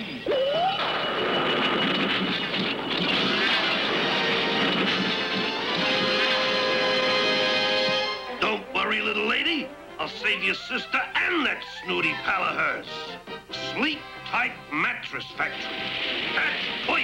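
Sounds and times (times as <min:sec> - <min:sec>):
dramatic music with held chords: 0:02.9 - 0:08.4.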